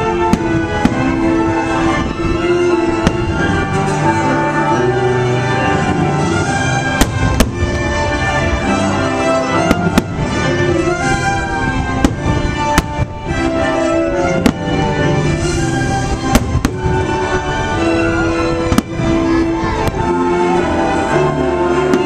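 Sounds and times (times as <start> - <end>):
orchestral music: 0.0 - 22.0
fireworks bursting in bangs: 6.4 - 8.6, 9.6 - 17.7, 18.6 - 20.2.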